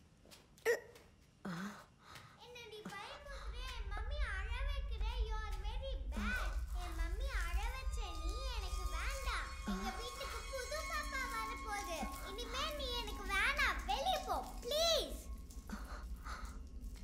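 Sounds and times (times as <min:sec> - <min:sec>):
child's wordless singing: 0:02.4 - 0:16.0
steady low drone: 0:03.2 - 0:17.0.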